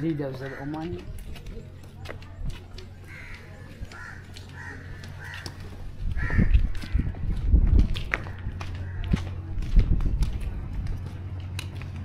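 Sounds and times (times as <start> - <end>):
low rumble on microphone: 5.8 - 12.0.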